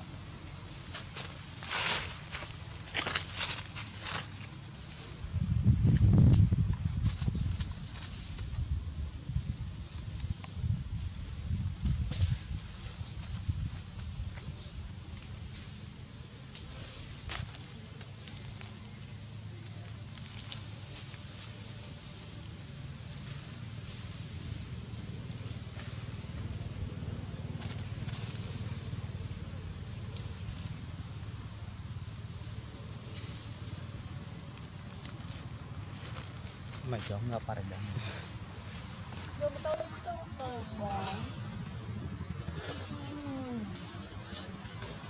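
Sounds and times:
high hiss: 0:00.0 - 0:45.0
dry leaves crackling: 0:00.4 - 0:08.7, 0:23.0 - 0:45.0.

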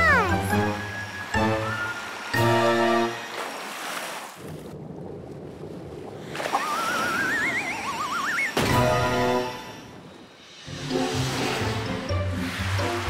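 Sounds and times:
background music: 0:00.0 - 0:03.4, 0:08.6 - 0:13.0
watery rushing noise: 0:00.6 - 0:13.0.

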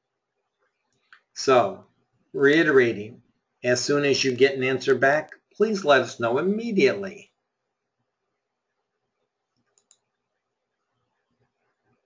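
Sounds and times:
computer mouse clicks: 0:09.6 - 0:10.2.

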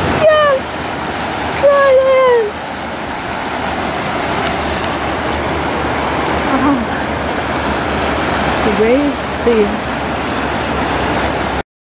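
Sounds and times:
river rushing over rocks: 0:00.0 - 0:11.6.

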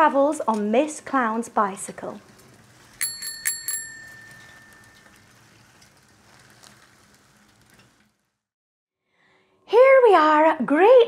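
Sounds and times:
bicycle bell ringing: 0:03.0 - 0:05.2.

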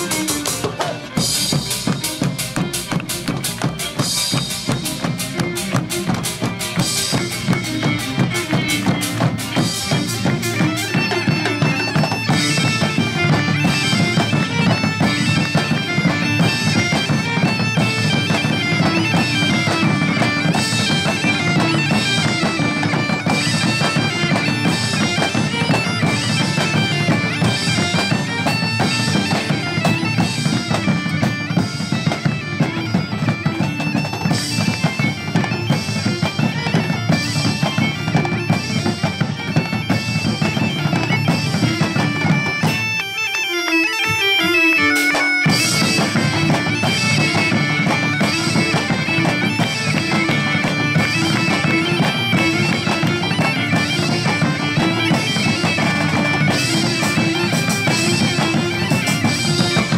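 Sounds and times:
bagpipe tune over drone: 0:00.0 - 0:59.9
drums beating: 0:00.0 - 0:59.9.

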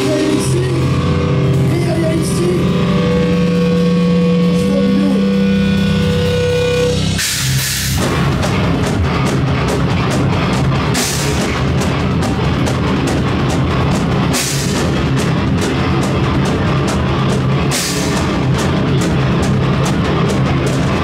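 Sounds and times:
distorted electric guitars: 0:00.0 - 0:21.0
heavy rock band playing: 0:00.0 - 0:21.0
pounding drums: 0:00.0 - 0:21.0
crashing cymbals: 0:02.8 - 0:09.0, 0:17.7 - 0:18.7.

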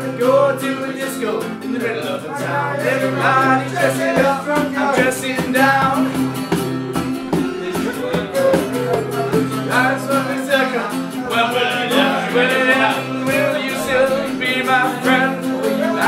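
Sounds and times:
acoustic guitars strumming: 0:00.0 - 0:16.0
man singing: 0:00.0 - 0:16.0.

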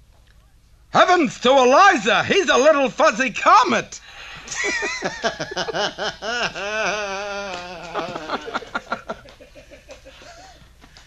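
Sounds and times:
hearty human laughter: 0:04.3 - 0:10.7.

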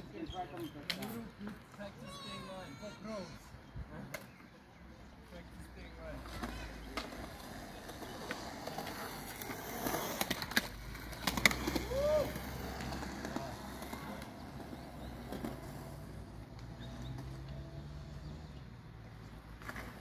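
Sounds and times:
skateboard wheels rolling on concrete: 0:00.0 - 0:20.0
skateboard clacks: 0:06.2 - 0:17.5.

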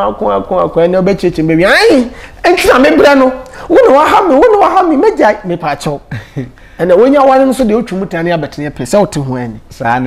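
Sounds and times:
man speaking animatedly: 0:00.0 - 0:10.0.

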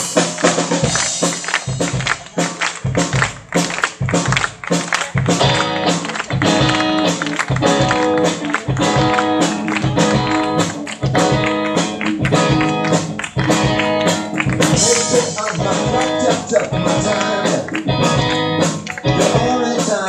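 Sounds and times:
drum kit: 0:00.0 - 0:20.0
electric guitar: 0:04.2 - 0:20.0
electric bass: 0:05.2 - 0:19.6.

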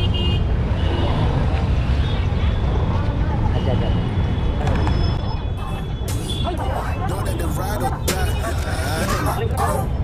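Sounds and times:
traffic rumble: 0:00.0 - 0:10.0
voices chattering: 0:02.8 - 0:10.0.

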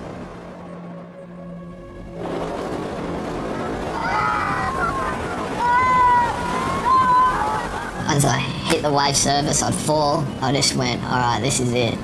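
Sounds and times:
wind: 0:00.0 - 0:12.0
surf rushing: 0:02.0 - 0:12.0
voices shouting: 0:03.6 - 0:08.0.

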